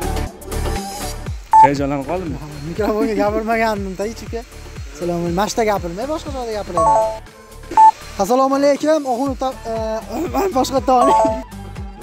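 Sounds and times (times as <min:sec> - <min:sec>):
background music with steady beat: 0:00.0 - 0:08.0, 0:09.3 - 0:12.0
phone keypad dialing beeps: 0:01.6 - 0:01.8, 0:06.8 - 0:07.2, 0:07.8 - 0:08.0, 0:11.0 - 0:11.4.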